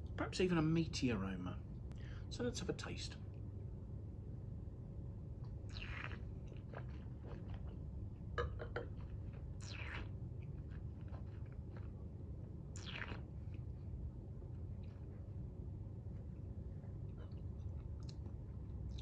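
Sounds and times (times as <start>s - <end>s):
wine slurping: 5.7s - 7.8s, 9.6s - 10.1s, 12.8s - 13.3s.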